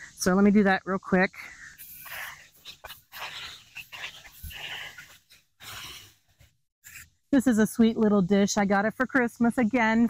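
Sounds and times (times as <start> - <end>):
hose nozzle spraying water: 1.8 - 6.0.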